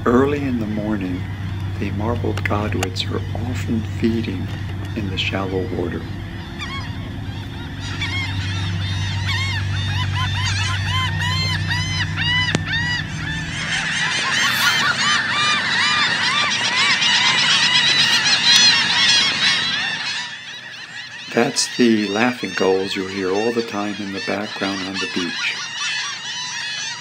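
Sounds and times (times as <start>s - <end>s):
gulls laughing calls: 0.0s - 27.0s.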